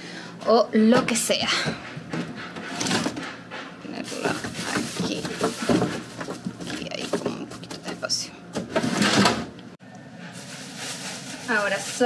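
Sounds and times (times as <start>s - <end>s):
plastic bags rustling: 3.9s - 8.2s, 10.3s - 12.0s
vegetables being handled: 3.9s - 8.2s, 10.3s - 12.0s.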